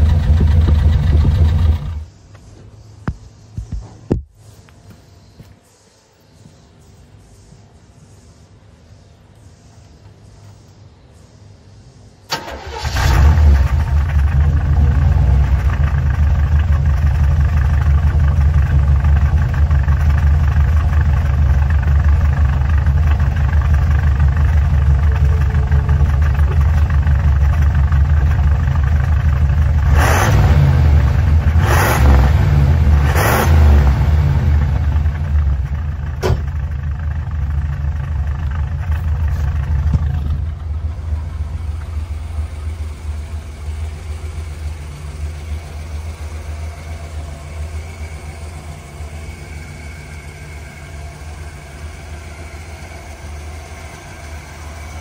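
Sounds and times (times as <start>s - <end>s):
engine revving bursts: 0.0s - 2.1s, 12.3s - 16.3s, 29.7s - 35.7s
car engine starting and idling: 0.0s - 2.2s, 12.3s - 55.0s.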